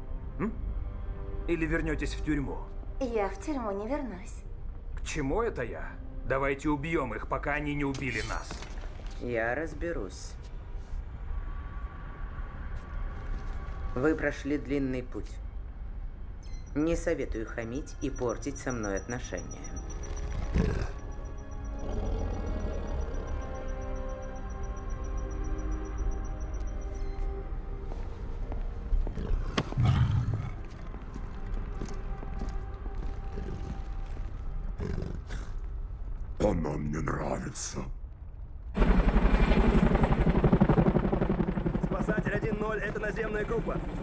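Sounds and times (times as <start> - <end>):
droning film score music: 0.0 - 44.0
creature throaty growl: 20.5 - 21.0, 21.8 - 23.4, 29.2 - 30.6, 34.8 - 35.6
low rumble: 38.0 - 44.0
helicopter rotor chopping: 38.8 - 44.0.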